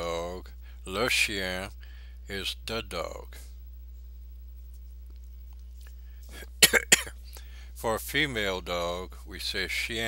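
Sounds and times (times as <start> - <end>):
low electrical hum: 0.0 - 10.0
person coughing: 6.3 - 7.2.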